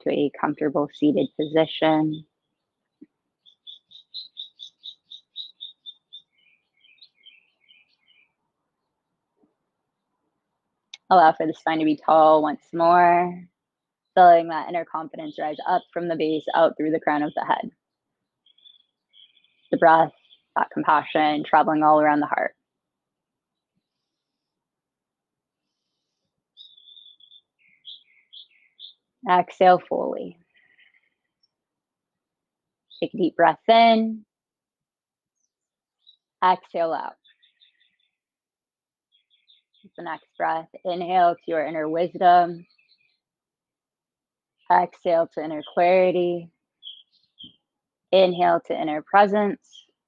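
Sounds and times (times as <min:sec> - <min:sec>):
songbird singing: 0:00.0 - 0:09.2, 0:10.9 - 0:22.6, 0:25.6 - 0:31.7, 0:32.8 - 0:34.2, 0:35.4 - 0:38.4, 0:39.0 - 0:43.4, 0:44.4 - 0:50.0.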